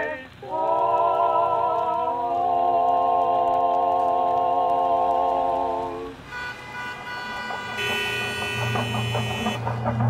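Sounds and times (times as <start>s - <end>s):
street ambience: 0.0s - 10.0s
car horn held tone: 6.3s - 9.9s
low drone: 7.7s - 10.0s.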